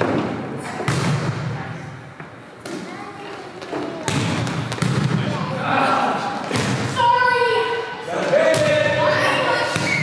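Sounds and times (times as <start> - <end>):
volleyball struck in gym: 0.0 - 3.0, 3.6 - 7.3, 8.1 - 10.0.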